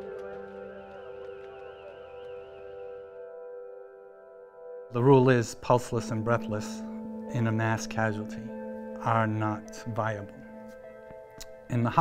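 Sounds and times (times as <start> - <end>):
droning ambient music: 0.0 - 12.0.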